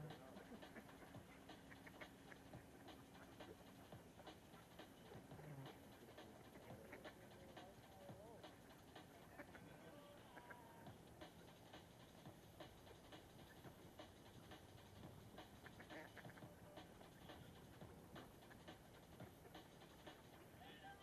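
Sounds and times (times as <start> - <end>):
faint irregular ticks: 0.0 - 21.0.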